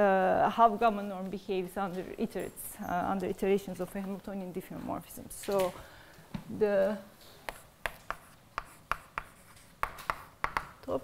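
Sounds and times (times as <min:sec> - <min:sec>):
chalk writing on blackboard: 0:07.4 - 0:10.8.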